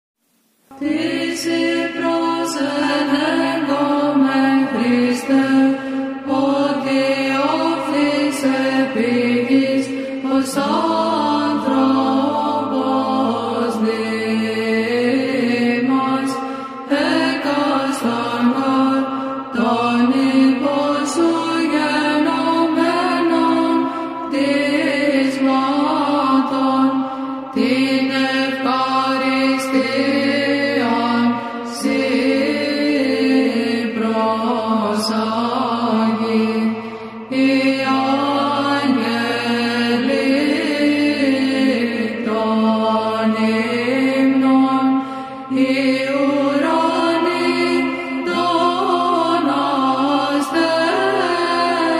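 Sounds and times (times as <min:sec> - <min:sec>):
voices chanting slow melody: 0:00.6 - 0:51.9
held vocal drone: 0:00.7 - 0:51.9.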